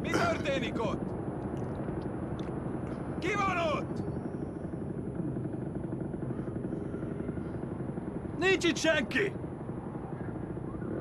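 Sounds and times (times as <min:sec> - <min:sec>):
low mechanical rumble: 0:00.0 - 0:11.0.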